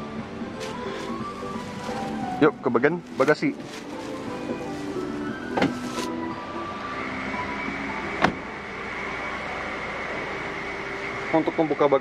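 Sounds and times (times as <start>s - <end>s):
handling noise: 0.6s - 6.2s.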